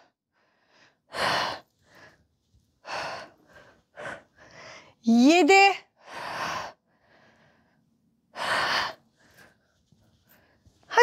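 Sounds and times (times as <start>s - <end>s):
woman breathing hard: 0.0s - 5.0s, 6.0s - 10.8s.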